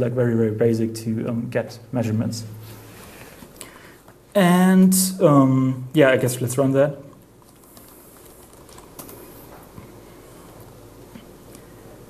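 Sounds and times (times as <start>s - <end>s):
computer keyboard keystrokes: 7.4s - 9.3s.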